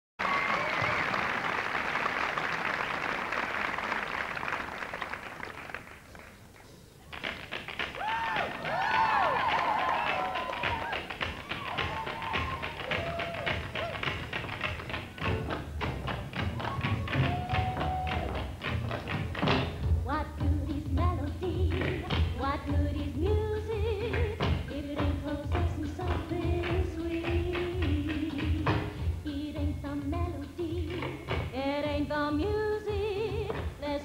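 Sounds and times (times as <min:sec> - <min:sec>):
audience applause: 0:00.2 - 0:06.4, 0:07.1 - 0:15.2, 0:16.5 - 0:18.5
tap shoes striking: 0:10.1 - 0:19.8.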